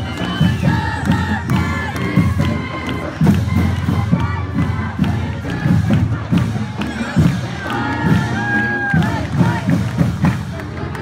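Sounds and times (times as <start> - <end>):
crowd cheering and shouting: 0.0 - 11.0
marching band playing: 0.0 - 11.0.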